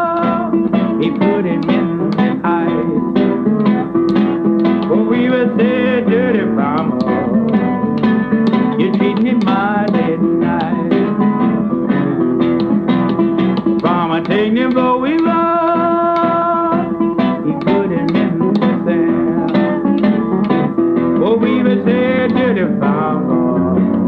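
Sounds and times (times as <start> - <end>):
man singing: 0.0 - 3.8, 4.8 - 7.8, 8.5 - 12.0, 13.7 - 24.0
plucked acoustic guitar: 0.0 - 24.0.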